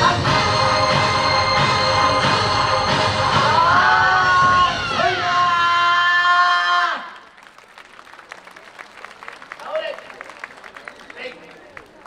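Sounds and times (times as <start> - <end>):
dance music: 0.0 - 5.6
audience clapping: 7.0 - 12.0.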